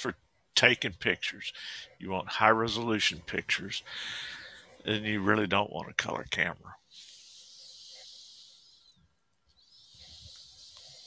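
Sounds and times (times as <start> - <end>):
speech: 0.0 - 3.9, 4.8 - 6.8
hissing breaths on microphone: 3.4 - 5.0, 6.8 - 11.0.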